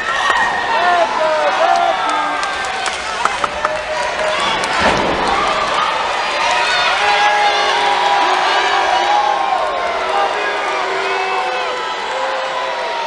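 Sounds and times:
crowd cheering and shouting: 0:00.0 - 0:13.0.

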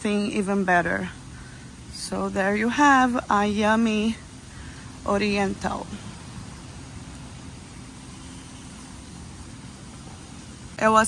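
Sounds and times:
low outdoor rumble with hiss: 0:00.0 - 0:11.0.

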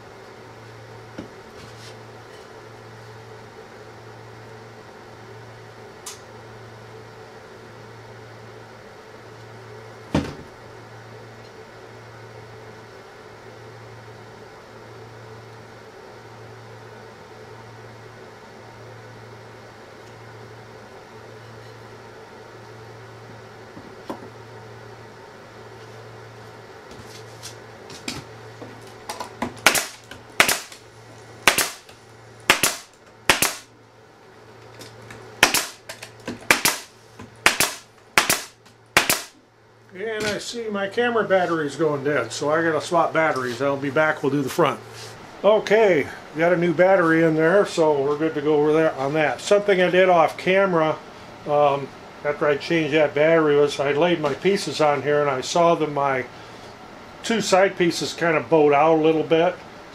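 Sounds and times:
steady low hum: 0:00.0 - 0:59.9
pneumatic staple gun firing: 0:29.6 - 0:30.8, 0:31.4 - 0:31.9, 0:32.5 - 0:33.7, 0:35.4 - 0:39.4.

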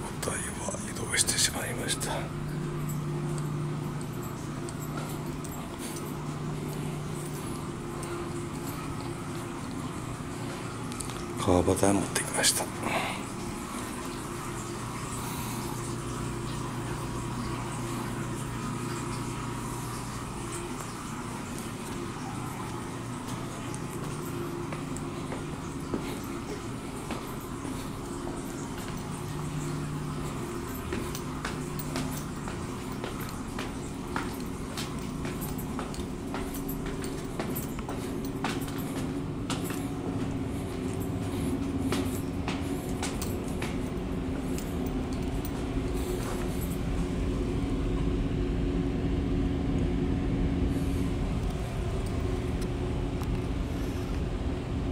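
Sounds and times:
mechanical hum with faint whine: 0:00.0 - 0:54.9.

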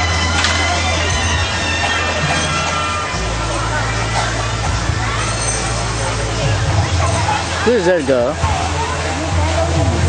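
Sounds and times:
crowd talking faintly: 0:00.0 - 0:10.0.

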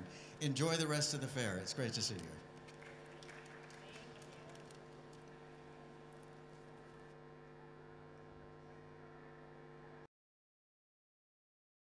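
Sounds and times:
faint electrical hum: 0:00.0 - 0:10.1.

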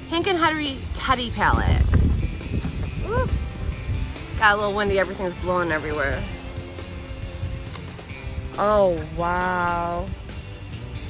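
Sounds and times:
wind buffeting microphone: 0:00.0 - 0:11.0
woman exclaiming woo: 0:03.0 - 0:03.4.

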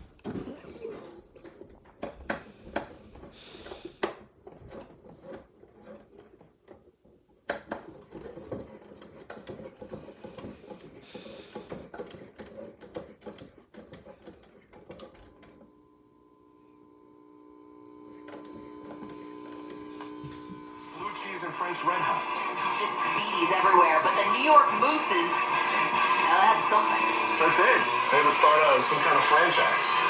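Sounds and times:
radio steady tone: 0:15.3 - 0:30.0.

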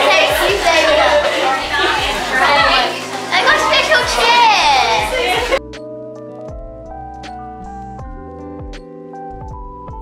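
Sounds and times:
children chattering: 0:00.0 - 0:05.6.

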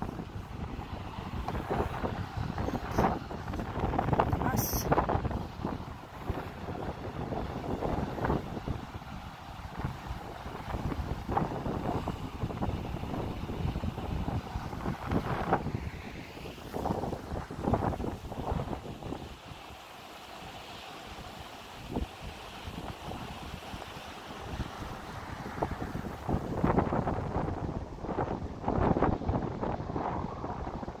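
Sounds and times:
wind buffeting microphone: 0:00.0 - 0:19.6, 0:21.8 - 0:31.0.

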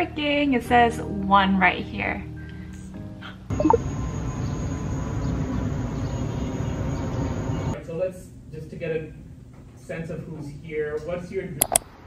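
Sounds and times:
low outdoor rumble: 0:03.2 - 0:09.5.

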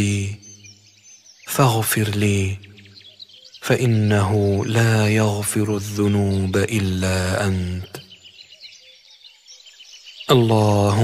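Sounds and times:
faint birds chirping: 0:00.0 - 0:11.0.

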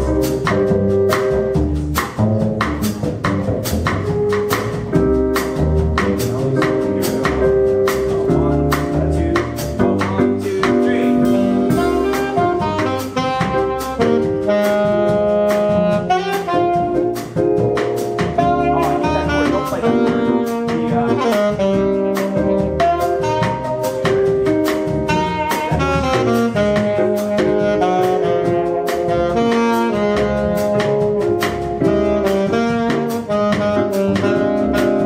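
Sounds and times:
bossa nova jazz combo: 0:00.0 - 0:35.0
saxophone melody: 0:05.0 - 0:35.0.

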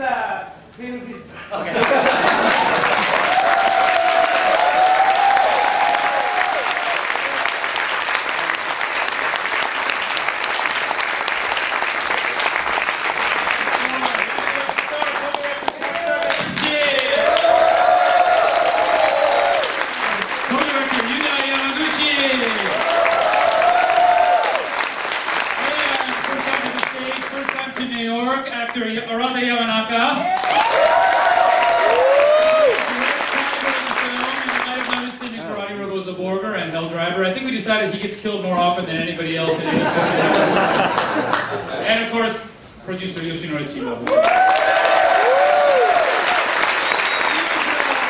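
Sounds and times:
audience applauding: 0:01.8 - 0:28.0, 0:30.3 - 0:35.6, 0:40.1 - 0:41.8, 0:44.0 - 0:48.0.

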